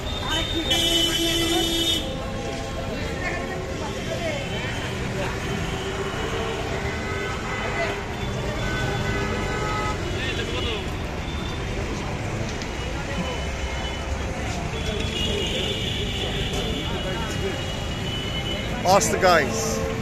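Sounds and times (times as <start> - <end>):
traffic noise: 0.0 - 20.0
people talking: 0.1 - 1.9, 18.8 - 19.8.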